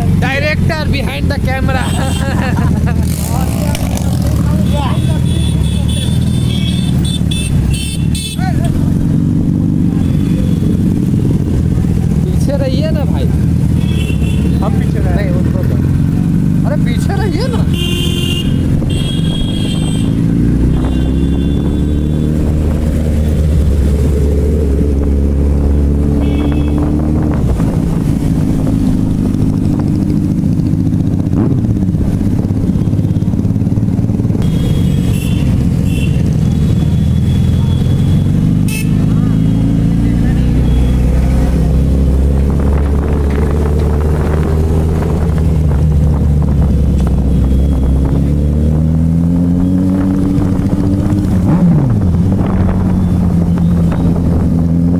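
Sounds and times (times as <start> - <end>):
motorcycle accelerating: 0.0 - 54.9
motorcycle engines running: 0.0 - 54.9
road and wind rush: 0.0 - 54.9.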